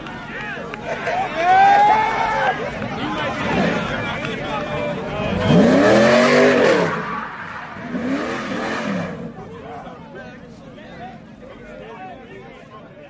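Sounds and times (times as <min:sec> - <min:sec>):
crowd voices: 0:00.0 - 0:13.0
car engine revving: 0:03.3 - 0:09.7.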